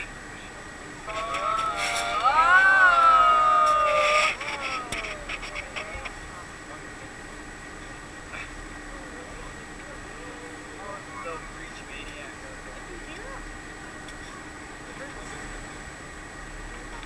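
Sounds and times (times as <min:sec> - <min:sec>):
people exclaiming ooh together: 0:01.1 - 0:05.2.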